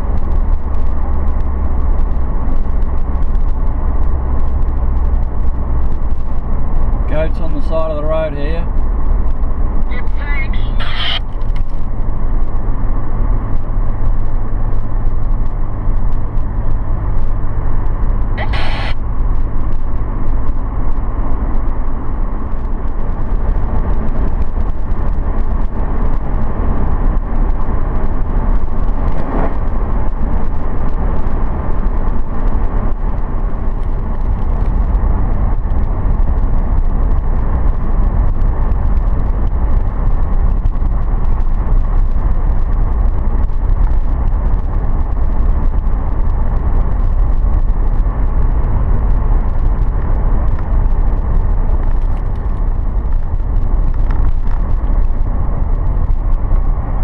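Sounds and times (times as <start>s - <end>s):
car driving low rumble: 0.0s - 57.0s.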